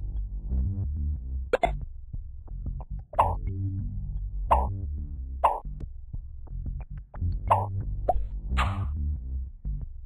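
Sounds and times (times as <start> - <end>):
low background music: 0.0 - 10.0.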